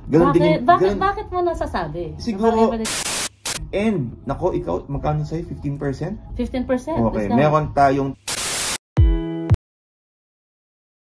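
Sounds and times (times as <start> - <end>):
buzzy electronic tone: 2.8 - 3.6, 8.2 - 8.8
tv static hiss burst: 2.8 - 3.6, 8.2 - 8.8.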